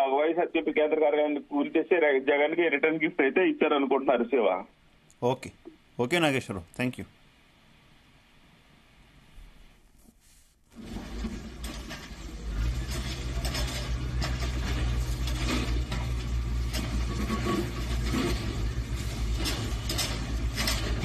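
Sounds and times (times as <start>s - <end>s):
concrete breaking knocks and clatter: 10.8s - 21.0s
excavator diesel engine running: 10.8s - 21.0s.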